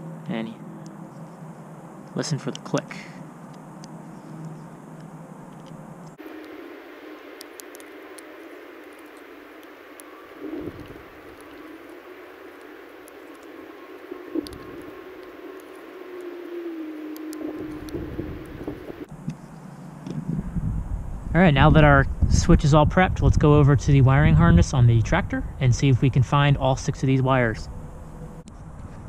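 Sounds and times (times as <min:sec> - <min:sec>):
steady background hiss: 0:00.0 - 0:28.8.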